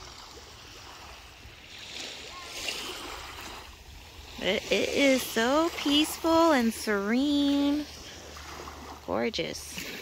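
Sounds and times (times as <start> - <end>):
small waves lapping: 0.0 - 10.0.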